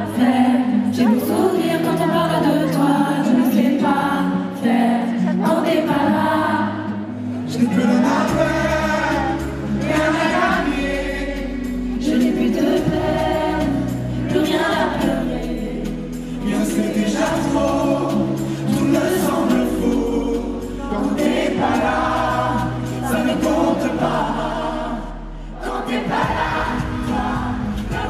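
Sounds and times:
man and woman singing: 0:00.0 - 0:28.0
backing track with bass: 0:07.5 - 0:28.0.

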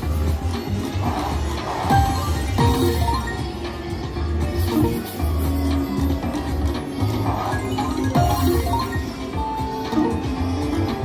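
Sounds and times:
slot machine game music: 0:00.0 - 0:11.0
slot machine win jingles: 0:01.1 - 0:03.5, 0:07.2 - 0:10.4.

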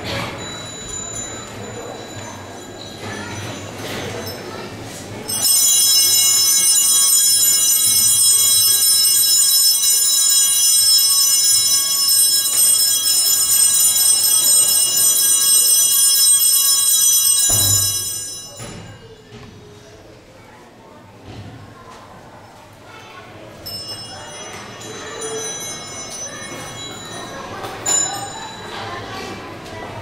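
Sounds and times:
altar bells ringing: 0:00.4 - 0:19.2, 0:23.6 - 0:29.1.

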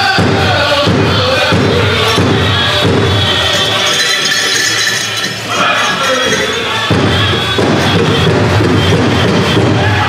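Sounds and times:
big drum beat: 0:00.0 - 0:05.6, 0:06.2 - 0:10.0
drum group singing: 0:00.0 - 0:10.0
metal cones rattling: 0:03.3 - 0:07.1.

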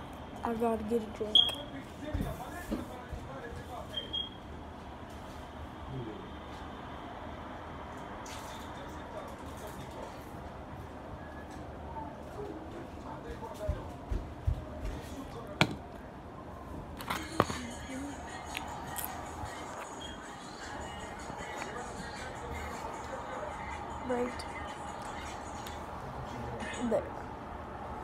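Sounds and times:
faint distant voices: 0:00.9 - 0:04.2, 0:05.2 - 0:28.0
room noise: 0:01.4 - 0:28.0.

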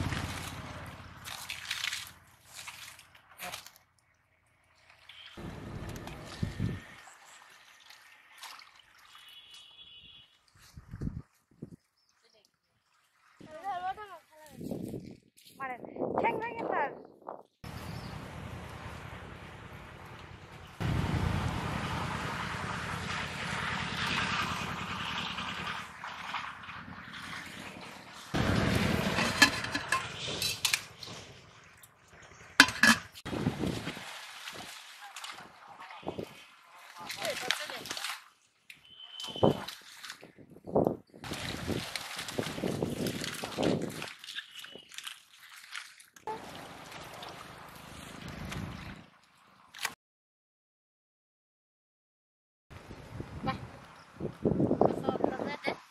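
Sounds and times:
water sloshing and splashing: 0:00.0 - 0:15.6, 0:17.6 - 0:50.0
metal pot lid clinking: 0:29.2 - 0:30.8, 0:32.6 - 0:33.1.

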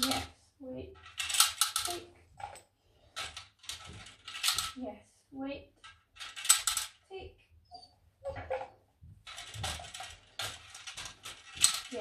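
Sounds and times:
plastic counter rattling down grid: 0:05.8 - 0:07.0, 0:09.2 - 0:12.0.

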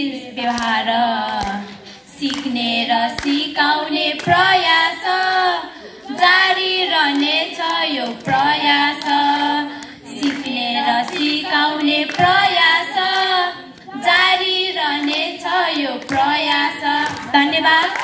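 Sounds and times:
children singing together: 0:02.4 - 0:18.0.

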